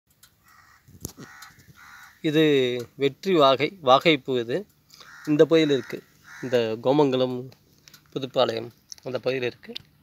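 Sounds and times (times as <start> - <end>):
faint bird calls: 0.4 - 2.4, 4.8 - 6.9.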